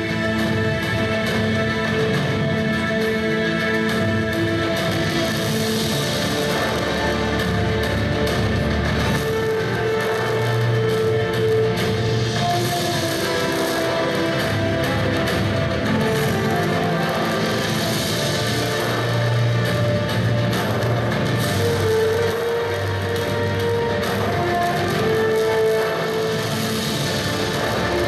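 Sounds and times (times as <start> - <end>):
instrumental music over loudspeakers: 0.0 - 28.0.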